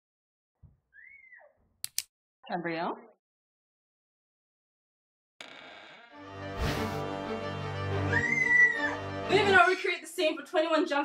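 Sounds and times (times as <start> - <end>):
sharp clicks: 1.8 - 2.1.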